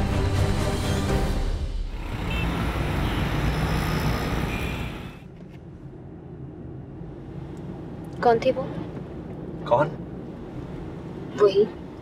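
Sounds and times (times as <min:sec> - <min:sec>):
busy road traffic: 0:01.1 - 0:12.0.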